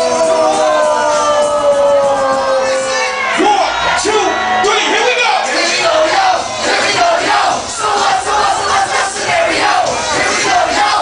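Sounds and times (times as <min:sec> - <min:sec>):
crowd shouting and chanting: 0:00.0 - 0:11.0
music: 0:00.0 - 0:11.0.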